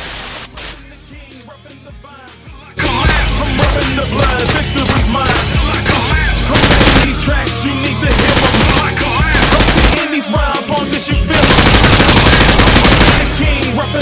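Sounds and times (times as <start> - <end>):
hip hop music: 0.5 - 14.0
automatic gunfire: 4.2 - 7.2, 8.1 - 10.2, 11.3 - 13.5.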